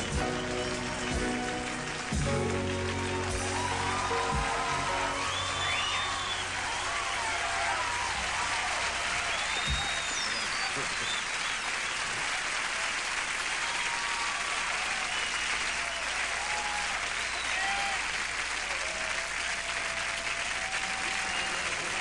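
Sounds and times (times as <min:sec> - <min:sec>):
audience applauding: 0:00.0 - 0:22.0
audience cheering: 0:00.0 - 0:22.0.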